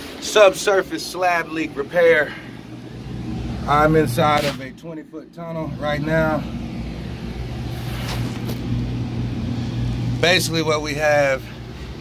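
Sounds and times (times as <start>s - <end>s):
ventilation fan hum: 0.0s - 12.0s.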